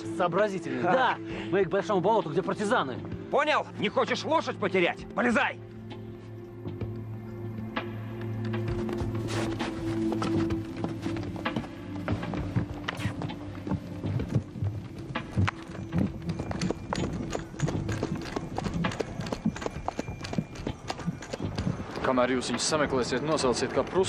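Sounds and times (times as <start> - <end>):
background music low notes: 0.0 - 24.0
horse hoofbeats on snow: 8.2 - 24.0.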